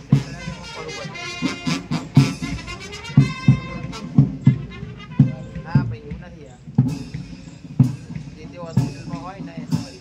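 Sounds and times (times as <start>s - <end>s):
bass drum with cymbal clash: 0.0s - 10.0s
distant brass band playing: 0.0s - 10.0s.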